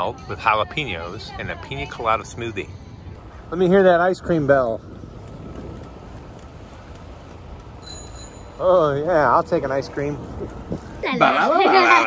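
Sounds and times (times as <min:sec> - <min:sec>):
wind: 0:00.0 - 0:12.0
bicycle rolling noise: 0:03.1 - 0:12.0
bicycle bell ringing: 0:07.8 - 0:09.6.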